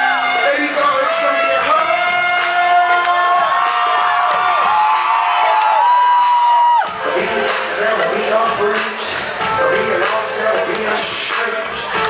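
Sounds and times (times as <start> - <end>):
crowd cheering and whooping: 0.0 - 7.5.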